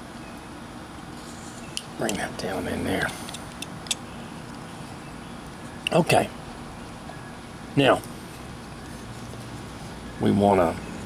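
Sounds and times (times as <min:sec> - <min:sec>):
steady background hum: 0:00.0 - 0:11.0.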